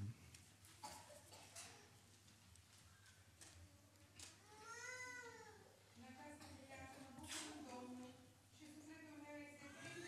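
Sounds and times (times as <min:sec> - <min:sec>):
faint high-pitched vocal sound: 0:04.4 - 0:05.8.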